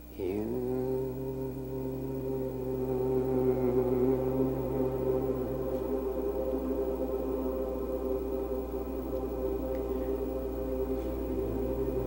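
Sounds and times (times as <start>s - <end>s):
person chanting a held note: 0.0s - 12.0s.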